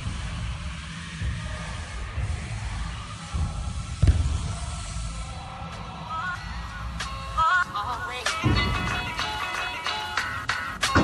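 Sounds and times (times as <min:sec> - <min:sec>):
bike landing thud: 0:03.7 - 0:04.6.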